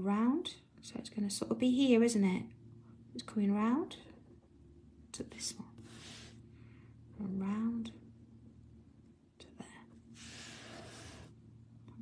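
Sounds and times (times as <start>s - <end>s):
soft breathy hiss: 5.7s - 7.0s, 9.7s - 11.4s.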